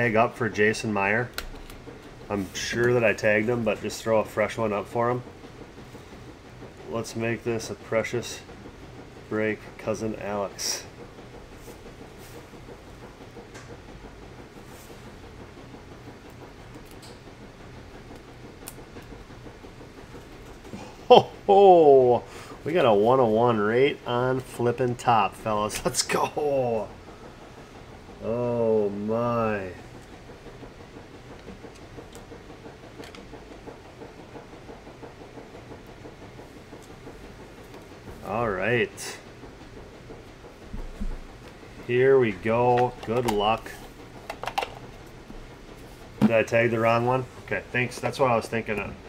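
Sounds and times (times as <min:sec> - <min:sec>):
low background hum: 0:00.0 - 0:49.0
low room rumble: 0:00.0 - 0:49.0.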